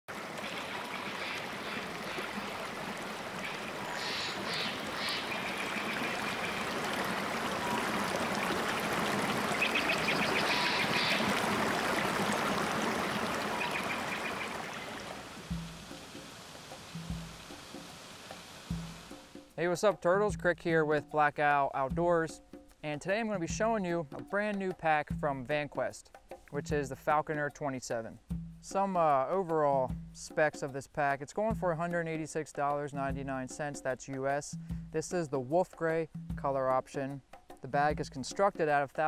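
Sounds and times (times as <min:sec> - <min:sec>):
stream rushing over rocks: 0:00.1 - 0:19.3
deep drum hits: 0:15.5 - 0:16.0, 0:16.9 - 0:17.6, 0:18.7 - 0:19.4.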